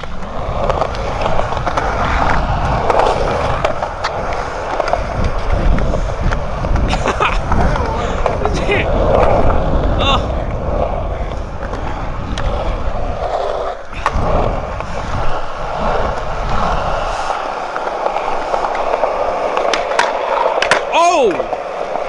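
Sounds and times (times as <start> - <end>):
skateboard clicks: 0.0 - 22.0
skateboard wheels rolling on concrete: 0.0 - 22.0.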